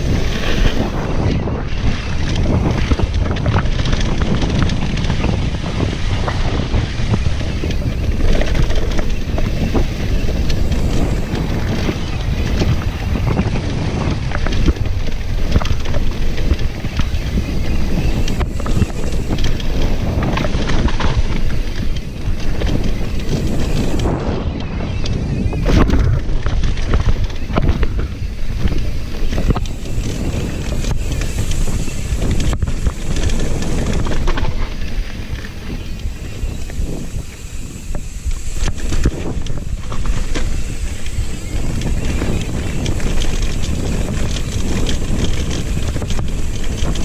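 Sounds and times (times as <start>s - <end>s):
bike clacking and rattling: 0.0s - 47.0s
rumble of tyres on dirt: 0.0s - 47.0s
wind buffeting microphone: 0.0s - 47.0s.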